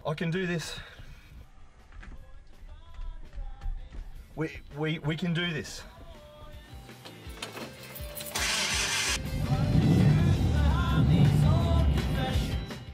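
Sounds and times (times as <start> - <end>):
background music: 0.2 - 12.9
car engine cranking: 8.1 - 10.4
car engine running loudly: 8.4 - 12.2.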